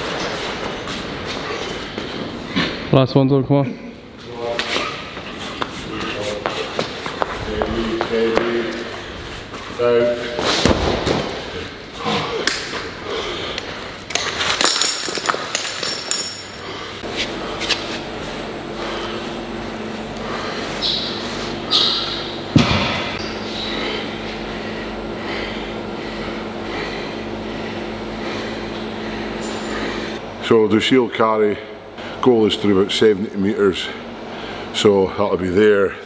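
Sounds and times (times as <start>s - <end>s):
steady machine hum: 0.0s - 36.0s.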